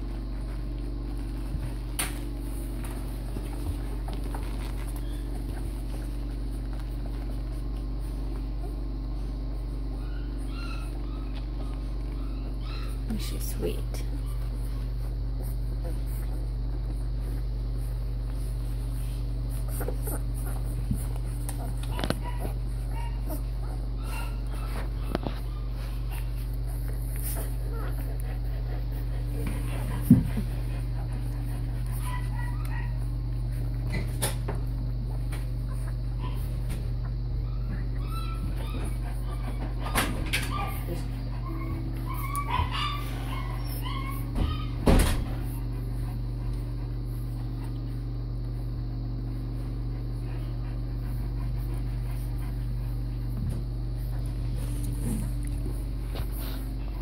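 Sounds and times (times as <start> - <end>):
puppies squeaking and whimpering: 0.0 - 48.6, 53.9 - 57.0
steady low hum: 0.0 - 57.0.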